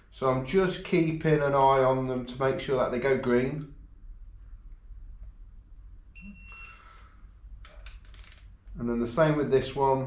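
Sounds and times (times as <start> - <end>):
torque wrench high-pitched beep: 6.2 - 6.9.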